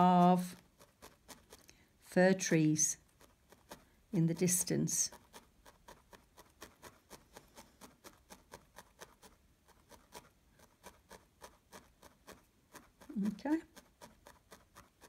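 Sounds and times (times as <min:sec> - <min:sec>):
felting needle ticking: 0:00.0 - 0:15.0.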